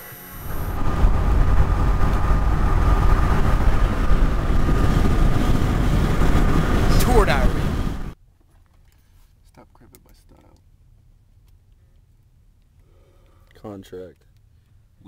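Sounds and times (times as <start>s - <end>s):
steady high whine: 0.0s - 8.2s
road and engine rumble: 0.1s - 8.2s.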